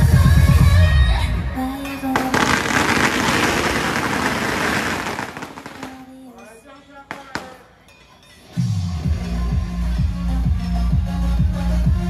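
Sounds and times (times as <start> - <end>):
dense crackling hiss: 2.0 - 6.4.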